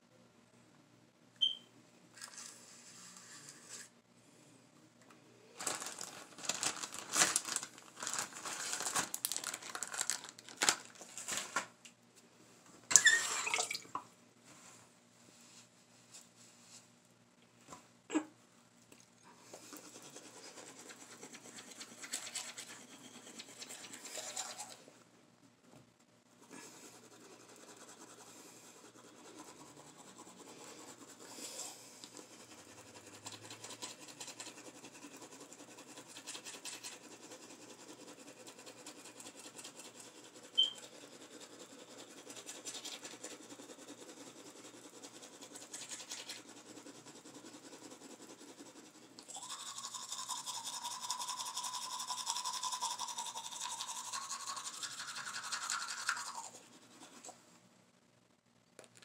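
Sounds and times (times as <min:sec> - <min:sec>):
toothbrush scrubbing teeth: 0:19.4 - 0:24.9, 0:26.4 - 0:57.4.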